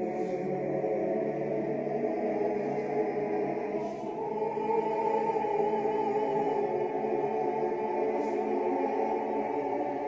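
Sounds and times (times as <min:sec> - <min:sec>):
choir holding long notes: 0:00.0 - 0:10.0.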